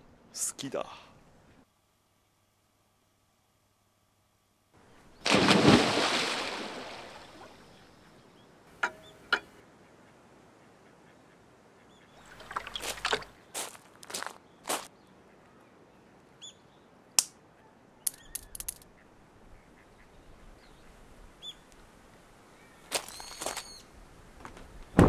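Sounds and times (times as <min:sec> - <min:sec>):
sharp clicks: 0:18.1 - 0:18.8.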